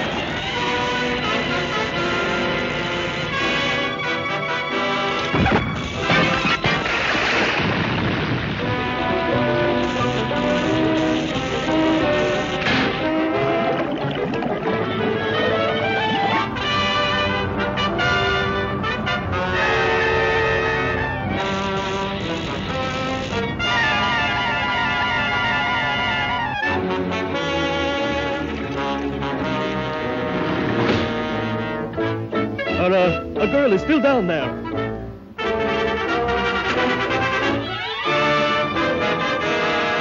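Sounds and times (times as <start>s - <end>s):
orchestral music: 0.0s - 40.0s
cartoon crash and smash effects: 5.3s - 9.1s
electric sparks: 5.3s - 13.0s.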